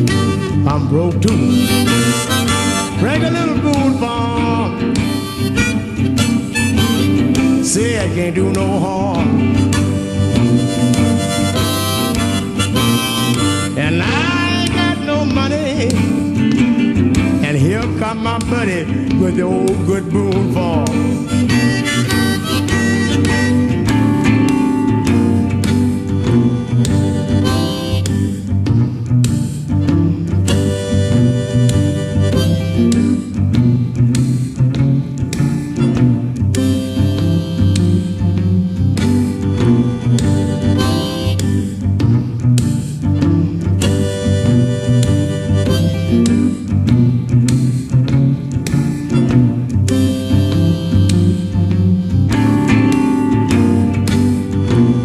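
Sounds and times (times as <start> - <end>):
harmonica solo: 0.0 - 8.4, 9.2 - 18.1, 20.7 - 55.0
electric guitar rhythm: 0.0 - 55.0.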